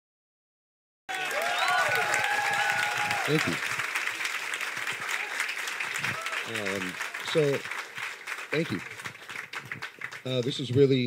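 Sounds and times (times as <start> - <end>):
voices cheering: 1.1 - 9.5
crowd clapping: 1.1 - 11.0.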